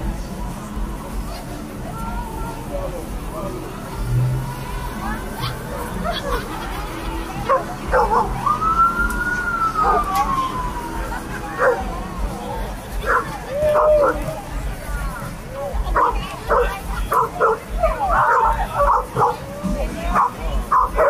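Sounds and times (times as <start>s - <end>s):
police siren wail: 4.0s - 14.3s
dog barking: 7.5s - 8.3s, 16.0s - 17.6s, 18.2s - 19.4s, 20.2s - 21.0s.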